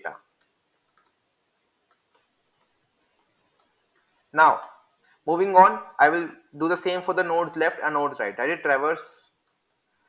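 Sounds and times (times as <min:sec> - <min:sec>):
computer keyboard keystrokes: 0:00.4 - 0:01.2, 0:01.8 - 0:04.8.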